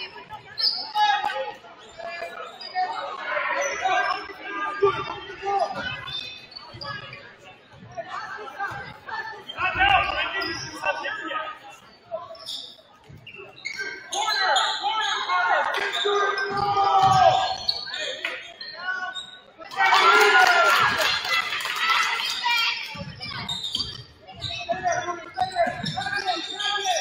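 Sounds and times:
people shouting: 19.8 - 22.6.

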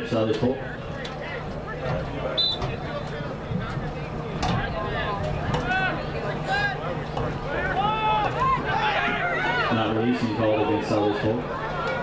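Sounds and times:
players and spectators shouting: 4.6 - 12.0.

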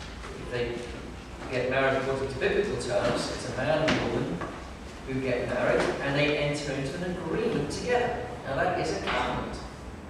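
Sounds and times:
man preaching through a microphone: 1.5 - 4.4, 5.1 - 9.7.

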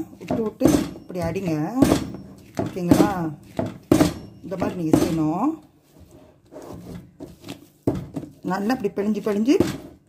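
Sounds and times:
dough slap: 0.0 - 5.3
dough squishing by hand: 0.0 - 10.0.

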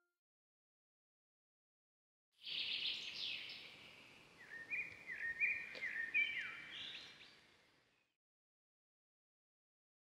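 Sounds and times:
faint outdoor hiss: 2.4 - 8.1.

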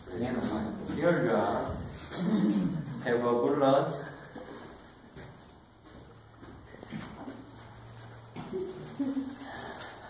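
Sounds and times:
soft murmur: 0.1 - 3.1.

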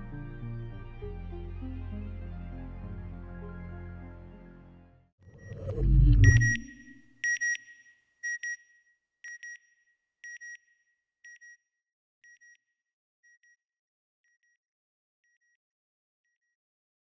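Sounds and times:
low boom: 5.4 - 6.9
deep whoosh: 5.4 - 7.0
high electronic double beep: 5.4 - 7.0.

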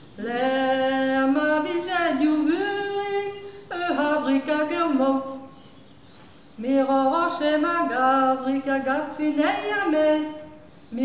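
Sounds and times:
woman singing unaccompanied: 0.1 - 5.8, 6.5 - 11.0.

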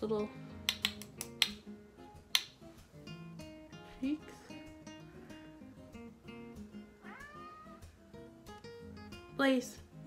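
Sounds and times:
soft acoustic guitar music: 0.0 - 10.0
cat meowing: 7.0 - 7.9.

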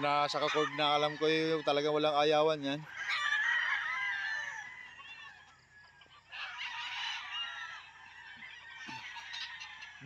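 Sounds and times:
distant roosters crowing: 0.0 - 10.0
rooster crowing: 0.1 - 1.8, 2.8 - 10.0.

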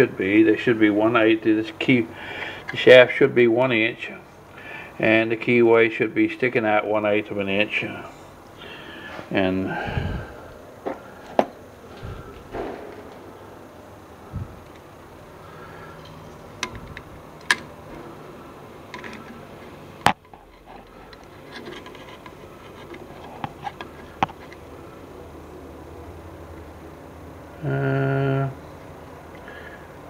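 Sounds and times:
faint low hum: 0.0 - 30.0
metal tools clicking and knocking: 16.0 - 17.8, 18.9 - 19.4.

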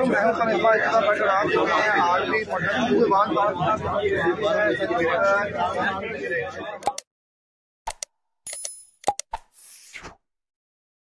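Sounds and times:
quick clicks: 6.8 - 7.0, 7.9 - 9.6.

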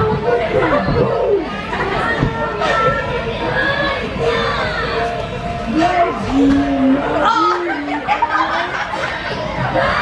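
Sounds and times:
girls chattering: 0.0 - 10.0.

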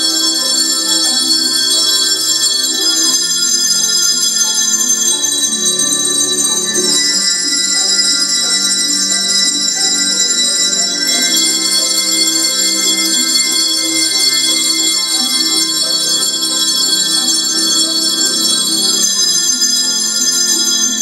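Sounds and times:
hand bells ringing chords: 0.0 - 21.0.

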